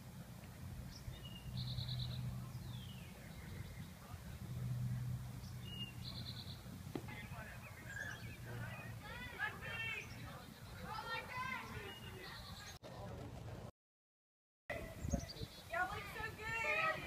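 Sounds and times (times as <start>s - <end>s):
low hum: 0.0s - 10.2s
songbird singing trill: 0.8s - 4.4s, 5.4s - 12.8s.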